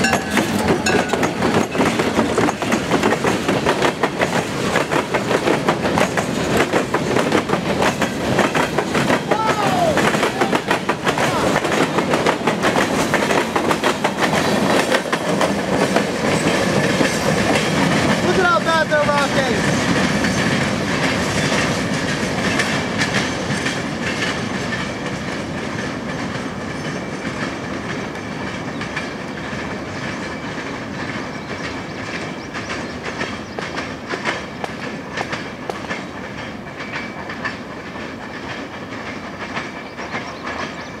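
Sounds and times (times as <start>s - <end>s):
train wheels clicking over rail joints: 0.0s - 41.0s.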